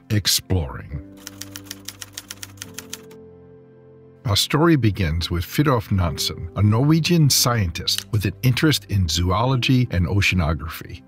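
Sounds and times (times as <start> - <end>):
background music chord: 0.0 - 11.0
typewriter key clicks: 1.2 - 3.2.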